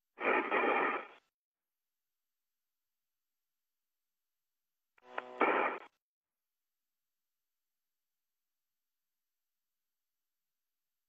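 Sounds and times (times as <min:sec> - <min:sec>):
radio static hiss: 0:00.2 - 0:01.3, 0:05.0 - 0:06.0
short buzzy radio tone: 0:05.0 - 0:06.0.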